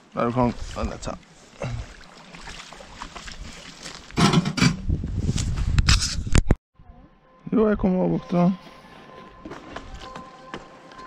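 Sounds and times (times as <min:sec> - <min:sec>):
footsteps: 0:08.6 - 0:11.0.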